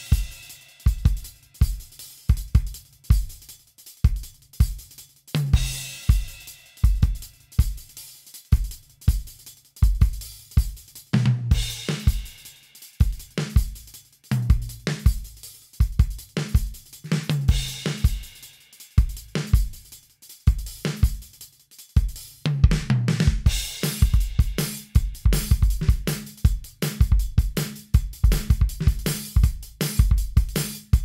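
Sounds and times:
crash cymbals: 0:00.0 - 0:02.2, 0:05.5 - 0:08.5
hi-hat and cymbals: 0:00.0 - 0:31.0
kick and snare drum beat: 0:00.0 - 0:31.0.

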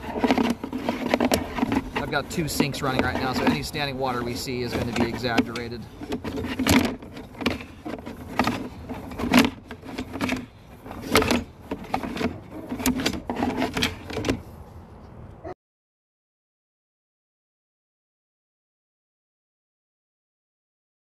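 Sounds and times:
cable knocking and rattling in pipe: 0:00.0 - 0:14.4.

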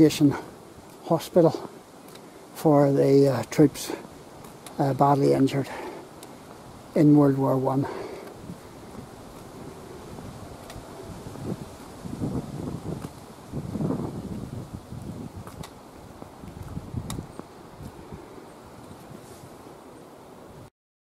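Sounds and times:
wind buffeting microphone: 0:03.6 - 0:19.8.

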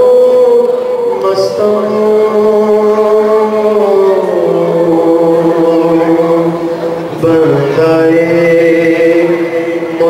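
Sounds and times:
man chanting into microphone: 0:00.0 - 0:10.0.

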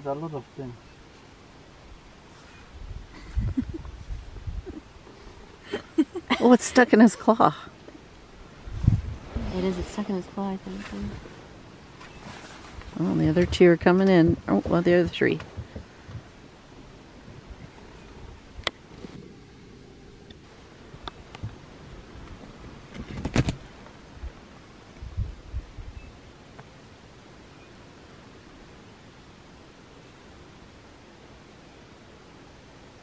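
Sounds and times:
low outdoor background noise: 0:00.0 - 0:33.0.

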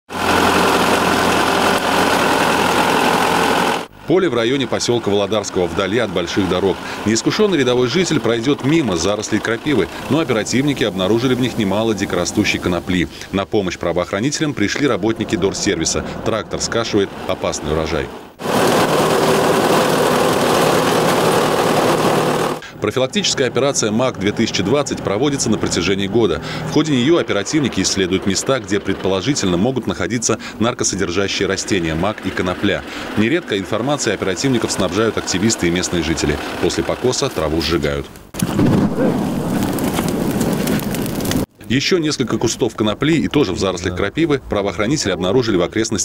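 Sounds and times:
mower cutting weeds: 0:00.1 - 0:04.0, 0:04.9 - 0:12.6, 0:18.4 - 0:22.7, 0:31.6 - 0:37.2
tractor engine running: 0:00.1 - 0:13.2, 0:14.7 - 0:38.7.

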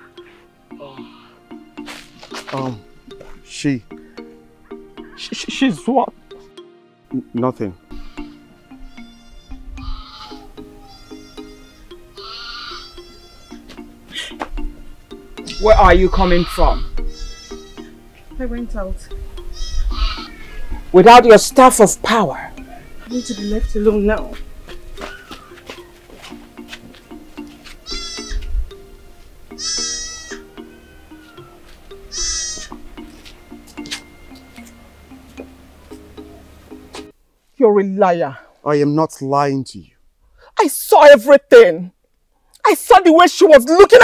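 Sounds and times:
film music with plucked low notes: 0:00.7 - 0:37.1
short wavering cries: 0:07.8 - 0:13.7, 0:15.3 - 0:18.2, 0:19.4 - 0:20.9, 0:22.4 - 0:23.9, 0:27.6 - 0:28.5, 0:29.5 - 0:35.2
goat bleating: 0:07.9 - 0:13.7, 0:15.4 - 0:18.0, 0:19.5 - 0:20.8, 0:22.6 - 0:23.9, 0:27.8 - 0:28.5, 0:29.5 - 0:32.8.

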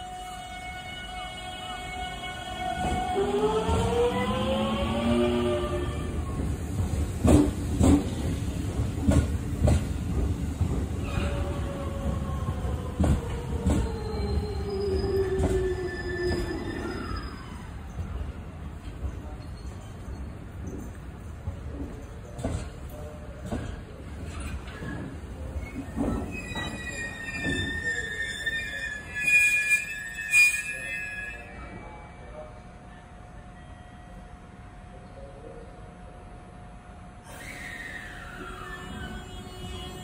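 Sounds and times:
electric train rumbling: 0:00.0 - 0:40.0
train wheels clacking over rail joint: 0:06.8 - 0:11.0.

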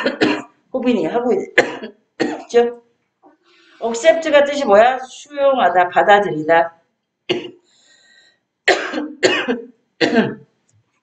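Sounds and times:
person coughing: 0:00.0 - 0:00.5, 0:01.6 - 0:02.5, 0:07.3 - 0:07.6, 0:08.7 - 0:10.4.

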